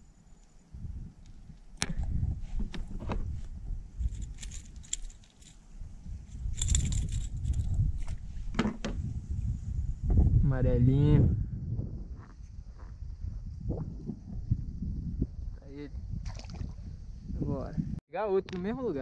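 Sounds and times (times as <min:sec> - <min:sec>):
metallic jangling rattle: 0:04.0 - 0:05.6, 0:06.3 - 0:08.1.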